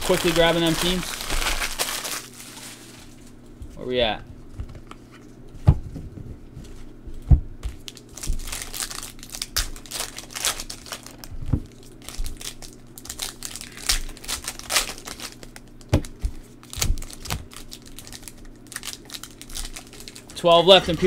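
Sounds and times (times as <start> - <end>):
card pack wrapper crinkling: 0.0 - 3.0, 7.8 - 21.0.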